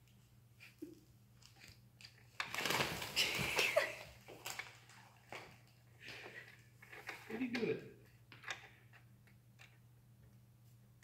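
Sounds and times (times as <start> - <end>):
packing sheet rustling and crinkling: 2.3 - 5.7.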